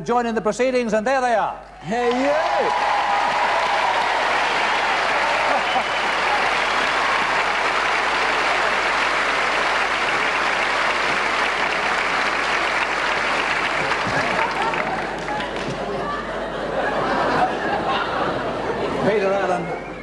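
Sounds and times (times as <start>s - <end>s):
audience applauding: 2.0s - 16.3s.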